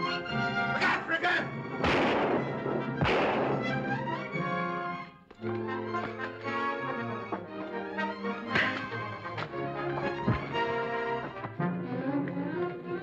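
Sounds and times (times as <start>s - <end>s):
dramatic orchestral film score: 0.0s - 13.0s
gunshots with echo: 1.8s - 4.4s.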